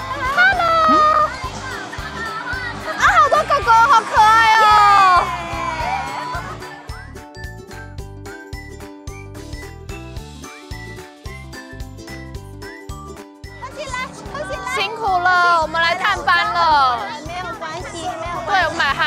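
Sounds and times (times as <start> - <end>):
high excited voices: 0.0 - 6.9
chiming background music with beat: 6.7 - 13.7.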